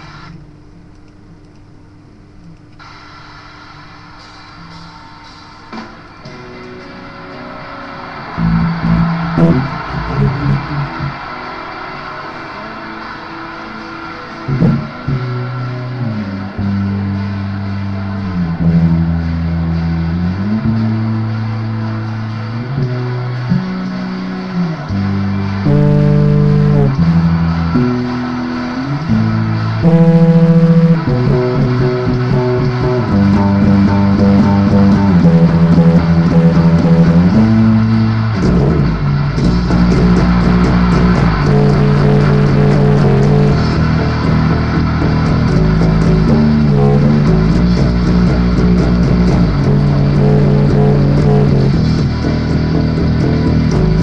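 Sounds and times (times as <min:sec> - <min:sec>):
rock band with cymbals: 0:04.2 - 0:54.0
electric bass guitar plucked: 0:08.3 - 0:11.2, 0:14.5 - 0:54.0.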